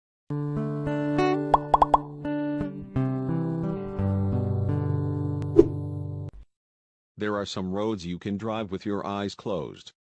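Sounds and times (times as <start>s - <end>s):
rising pitch pops: 1.6s - 2.1s.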